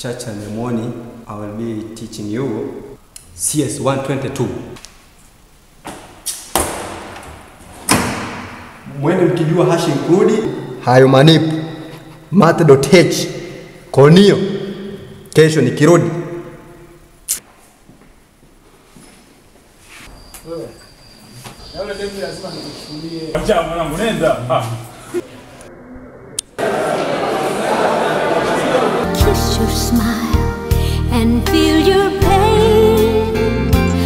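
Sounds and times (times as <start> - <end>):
man talking: 8.9 - 11.6, 12.3 - 14.6, 15.3 - 16.3, 21.8 - 25.0.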